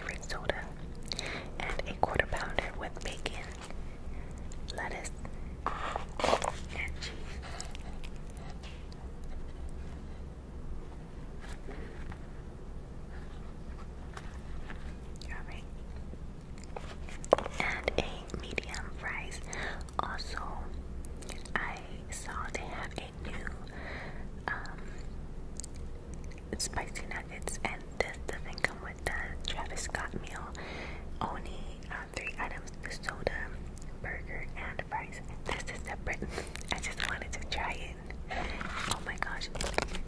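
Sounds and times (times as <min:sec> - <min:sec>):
wet chewing: 0:07.3 - 0:09.4.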